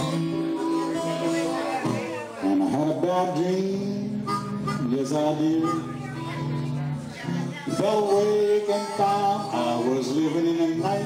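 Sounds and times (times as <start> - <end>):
blues harmonica: 0.0 - 11.0
strummed acoustic guitar: 0.0 - 11.0.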